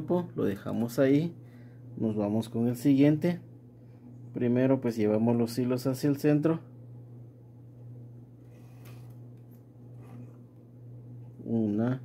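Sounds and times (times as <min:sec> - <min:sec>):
steady low hum: 0:00.0 - 0:12.0
cord rustling in fingers: 0:08.4 - 0:10.6.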